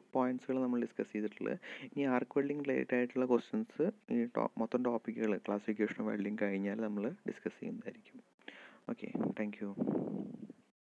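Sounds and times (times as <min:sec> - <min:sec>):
soft breath-like hiss: 0:01.6 - 0:02.0, 0:08.5 - 0:08.9
person whispering: 0:08.9 - 0:10.5.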